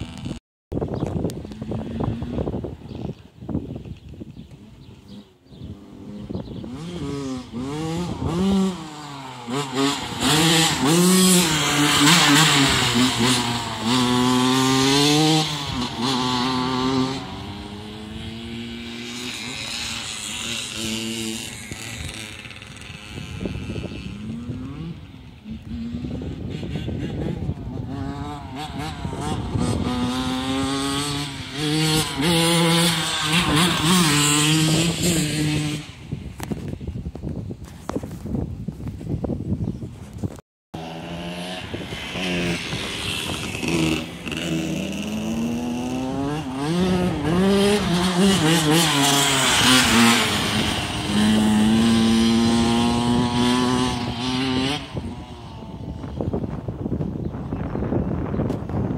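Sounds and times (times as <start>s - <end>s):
two-stroke motorcycle engine revving: 0.0s - 0.4s, 4.5s - 36.8s, 40.8s - 57.2s.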